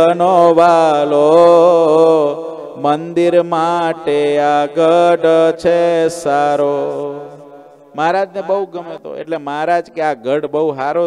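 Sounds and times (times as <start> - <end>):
man chanting devotional verse: 0.0 - 11.0.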